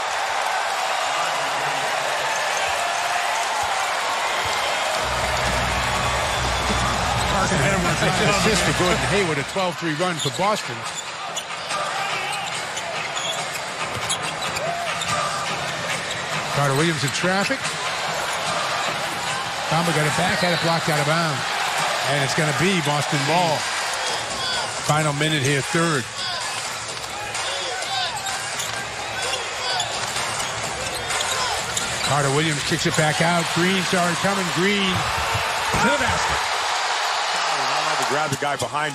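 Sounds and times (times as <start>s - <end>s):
arena crowd noise: 0.0s - 38.9s
sneakers squeaking on court: 10.0s - 16.4s, 28.2s - 32.2s.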